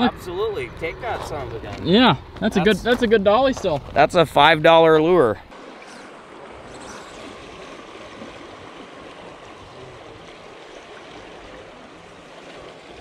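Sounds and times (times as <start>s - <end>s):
river water rushing against rocks: 5.5s - 13.0s.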